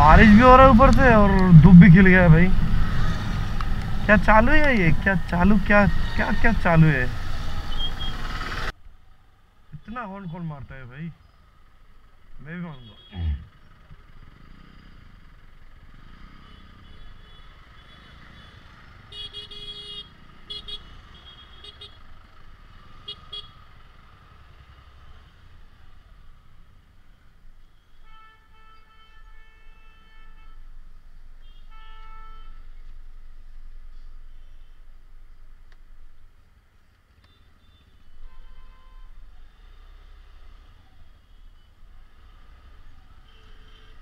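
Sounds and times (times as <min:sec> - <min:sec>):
low rumble of engines: 0:00.0 - 0:44.0
vehicle horns honking: 0:16.2 - 0:22.0, 0:27.8 - 0:30.7, 0:31.4 - 0:32.8, 0:37.3 - 0:39.3, 0:43.2 - 0:44.0.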